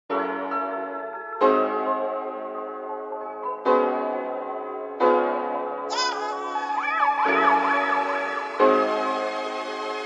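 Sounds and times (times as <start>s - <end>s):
background music chords: 0.1s - 10.0s
siren-like wailing tone: 6.4s - 9.3s.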